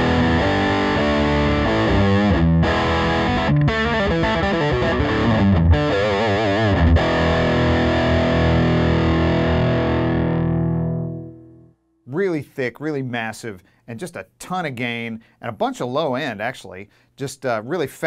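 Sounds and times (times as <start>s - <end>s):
heavily distorted electric guitar riff: 0.0s - 11.7s.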